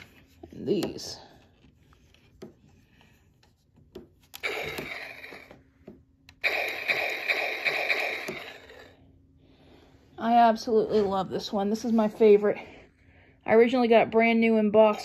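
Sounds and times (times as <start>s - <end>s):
toy electronic sound effects: 4.4s - 5.5s, 6.4s - 9.0s.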